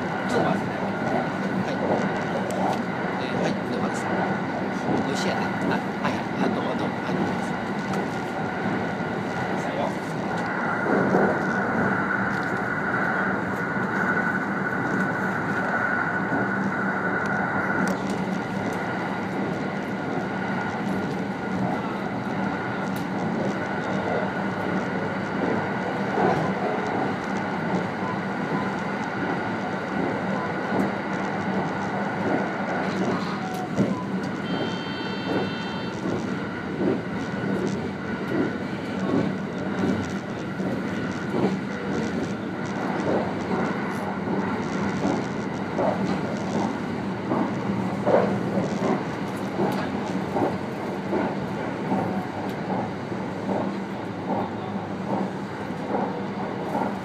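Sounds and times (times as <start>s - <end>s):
train wheels rumbling on rail: 0.0s - 57.0s
clacks over rail joints: 17.2s - 57.0s
brief high tone: 34.4s - 35.9s.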